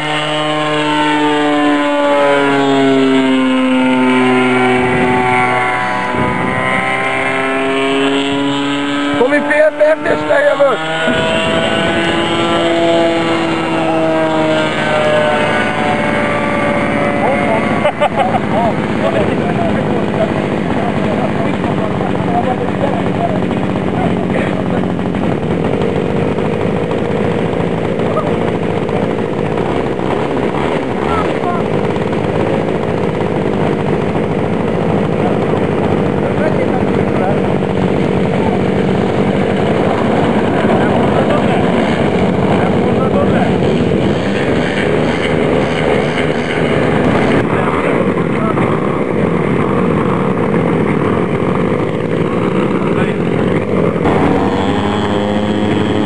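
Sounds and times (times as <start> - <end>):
model plane engine buzzing: 0.0 - 56.0.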